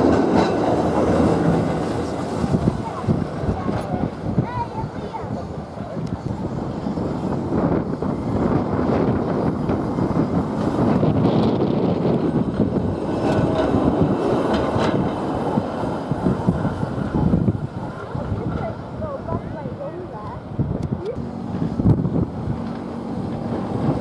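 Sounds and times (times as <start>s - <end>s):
tram wheels clattering on rails: 0.0s - 24.0s.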